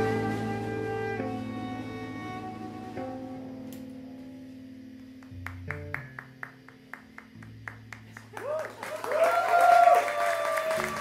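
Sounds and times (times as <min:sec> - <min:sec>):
low notes: 0:00.0 - 0:08.0.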